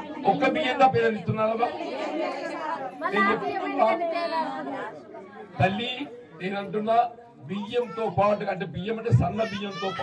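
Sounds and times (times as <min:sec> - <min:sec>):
man talking into microphone: 0:00.2 - 0:01.8, 0:05.6 - 0:10.0.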